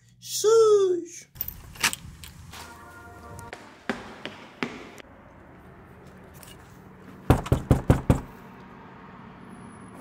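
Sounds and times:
footsteps on tiled floor: 2.5s - 5.1s.

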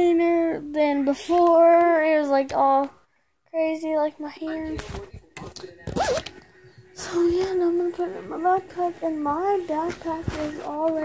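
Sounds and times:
zipper rasping: 6.0s - 6.3s.

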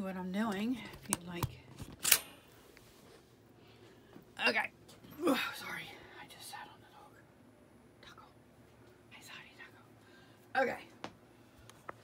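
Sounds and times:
woman whispering: 5.3s - 7.3s, 8.0s - 8.4s, 9.1s - 10.9s.

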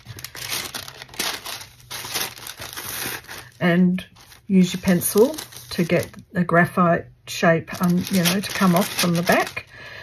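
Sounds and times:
paper rustling and crinkling: 0.0s - 6.2s, 7.7s - 9.7s.

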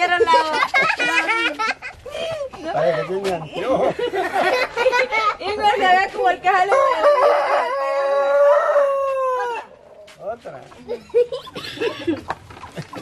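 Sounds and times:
laughter: 0.1s - 2.1s, 3.6s - 5.4s, 10.9s - 13.0s
rooster crowing: 6.7s - 9.8s.

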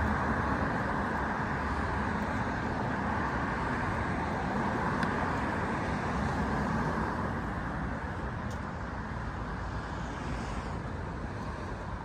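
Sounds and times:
city road traffic: 0.0s - 12.0s.

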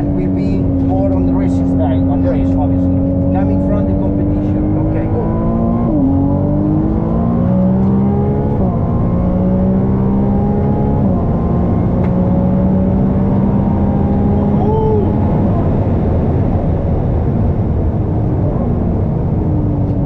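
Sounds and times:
sports car engine accelerating: 0.0s - 20.0s.

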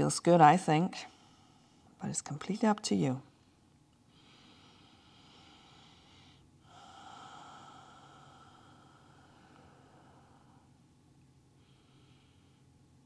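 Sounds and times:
slow breathing through the nose: 1.0s - 2.0s, 3.5s - 10.8s, 11.5s - 12.9s.

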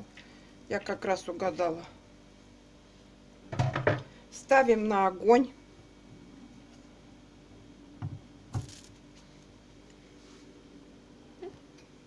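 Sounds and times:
kitchenware knocking on counter: 3.5s - 4.0s.

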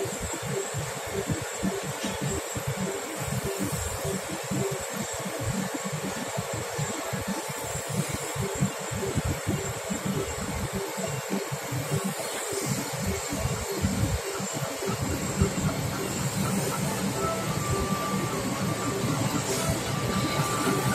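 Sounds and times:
steady rushing hum: 0.0s - 20.9s.

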